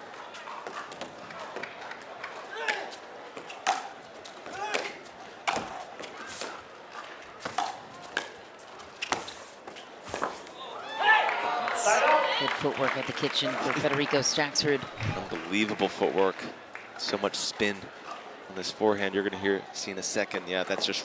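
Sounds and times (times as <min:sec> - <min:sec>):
paddles hitting plastic ball: 0:02.3 - 0:06.5.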